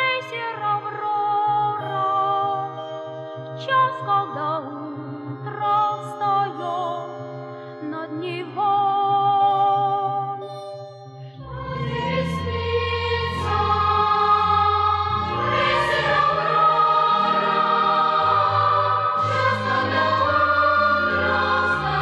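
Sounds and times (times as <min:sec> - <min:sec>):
choir singing held chords: 0:11.4 - 0:22.0.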